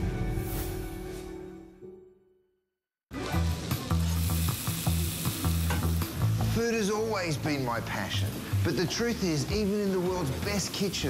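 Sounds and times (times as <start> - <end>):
food sizzling in a frying pan: 3.1 - 11.0.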